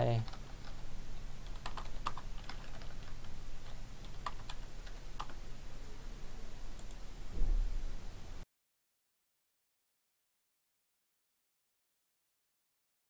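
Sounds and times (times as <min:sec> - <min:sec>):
keyboard keystrokes: 0:01.4 - 0:05.4
low thump: 0:07.3 - 0:07.9.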